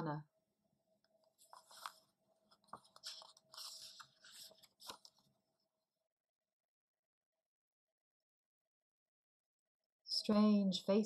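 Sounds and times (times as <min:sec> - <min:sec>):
paper page rustling: 0:01.4 - 0:05.3.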